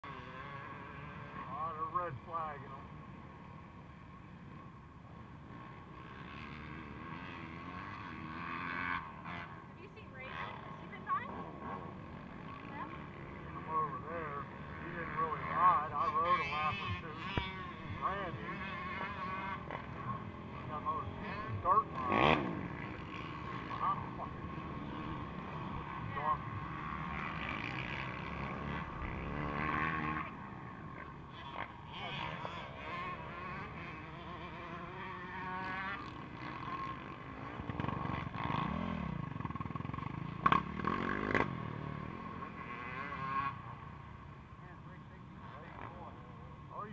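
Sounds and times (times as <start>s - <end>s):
motorcycle engines revving: 0.0s - 46.9s.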